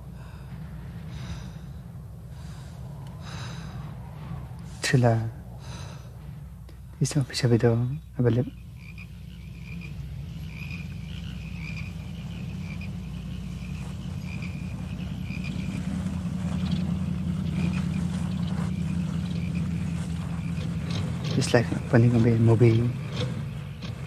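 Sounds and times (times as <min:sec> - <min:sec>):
car engine humming: 0:00.0 - 0:24.0
frogs and insects chirping: 0:00.0 - 0:24.0.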